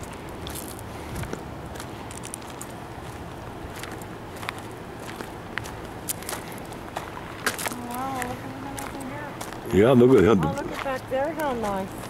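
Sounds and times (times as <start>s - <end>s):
footsteps on gravel: 0.0s - 12.0s
outdoor background hiss: 0.0s - 12.0s.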